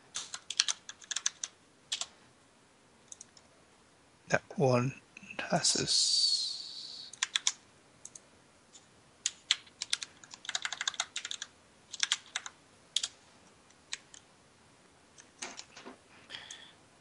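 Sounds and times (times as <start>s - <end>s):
computer keyboard typing: 0.2s - 2.1s, 3.1s - 3.4s, 7.1s - 8.2s, 9.2s - 13.1s, 13.9s - 14.2s.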